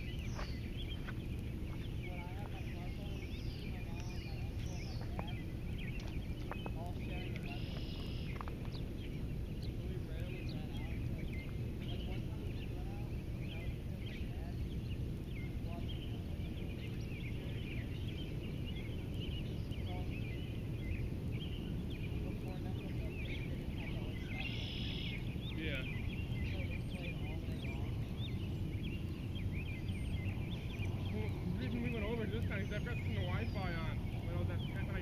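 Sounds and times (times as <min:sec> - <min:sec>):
low background rumble: 0:00.0 - 0:35.0
small birds chirping: 0:00.0 - 0:35.0.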